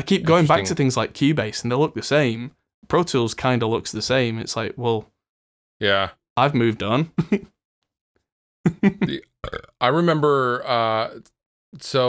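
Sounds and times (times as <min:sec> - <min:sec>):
man speaking: 0:00.0 - 0:05.0, 0:05.8 - 0:07.4, 0:08.7 - 0:09.2, 0:09.8 - 0:11.2, 0:11.8 - 0:12.0
man laughing: 0:00.1 - 0:00.8, 0:07.2 - 0:07.5, 0:08.7 - 0:09.2.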